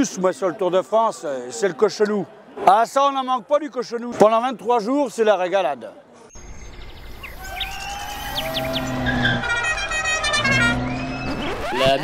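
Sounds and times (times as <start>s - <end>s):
small car engine approaching: 7.0s - 11.8s
whistling sound effects: 7.2s - 11.8s.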